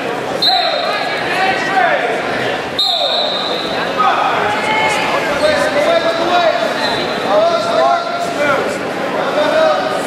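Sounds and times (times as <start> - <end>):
echoing voices and calls: 0.0 - 10.0.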